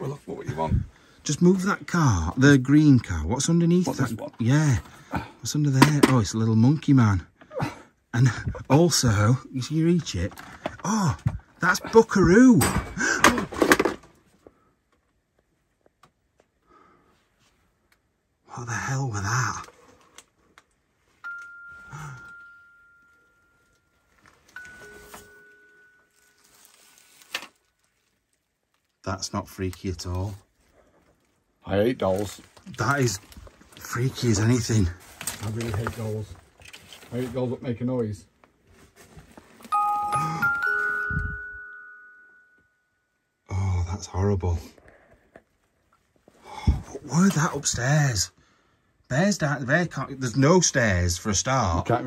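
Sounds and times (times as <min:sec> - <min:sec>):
toy doll chiming: 0:21.2 - 0:26.5, 0:39.7 - 0:43.2
toy doll high tone: 0:39.7 - 0:42.6.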